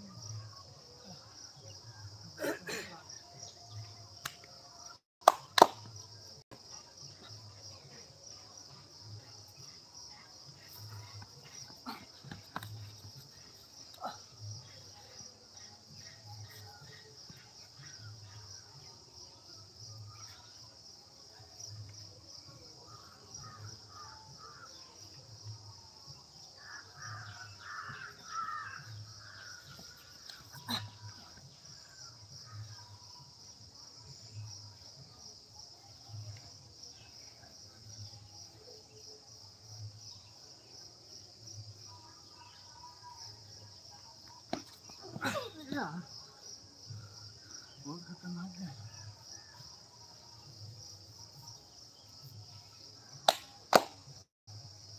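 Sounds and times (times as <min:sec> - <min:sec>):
high insect trill: 0:00.0 - 0:54.9.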